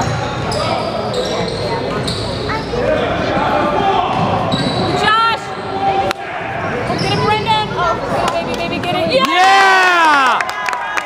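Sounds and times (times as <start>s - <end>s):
sneakers squeaking on court: 0.0s - 2.8s, 4.4s - 5.0s, 6.9s - 7.8s
spectators chatting: 0.0s - 10.2s.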